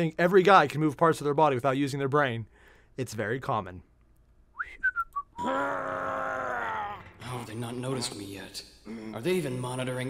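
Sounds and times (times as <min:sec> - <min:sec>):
person whistling: 0:04.5 - 0:05.5.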